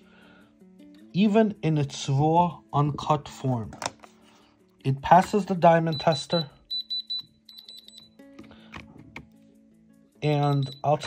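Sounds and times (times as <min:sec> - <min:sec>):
soft background music: 0:00.0 - 0:11.0
rapid high-pitched tester beeps: 0:05.9 - 0:08.2, 0:10.4 - 0:11.0.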